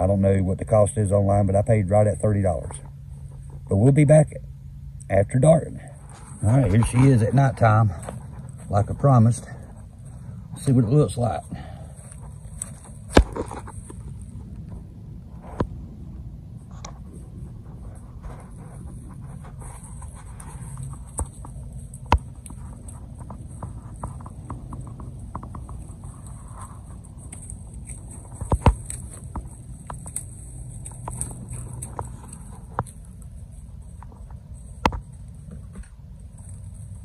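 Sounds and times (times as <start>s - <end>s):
steady low rumble: 0.0s - 37.0s.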